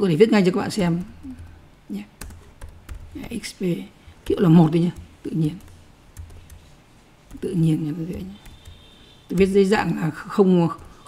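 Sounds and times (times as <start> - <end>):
keyboard keystrokes: 0.6 - 3.3, 4.2 - 6.7, 7.3 - 11.0.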